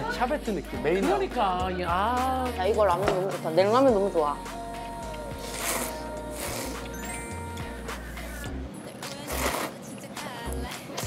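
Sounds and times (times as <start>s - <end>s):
background music: 0.0s - 11.0s
person slurping noodles: 5.4s - 6.9s, 9.3s - 9.8s.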